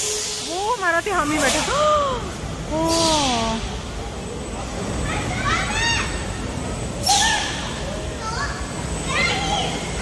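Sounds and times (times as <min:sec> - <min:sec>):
riders shrieking: 0:07.0 - 0:07.8.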